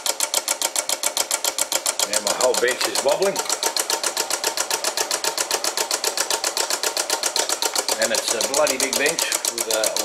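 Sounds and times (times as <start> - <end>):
motor rapid clicking clatter: 0.0 - 10.0.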